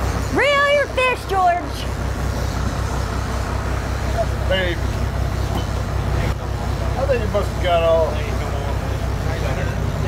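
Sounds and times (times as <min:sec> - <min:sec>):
boat engine low rumble: 0:00.0 - 0:10.0.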